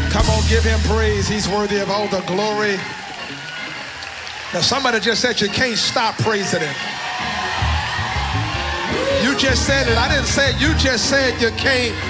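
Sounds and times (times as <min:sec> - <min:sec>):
rhythmic bass line: 0:00.0 - 0:02.0, 0:07.2 - 0:12.0.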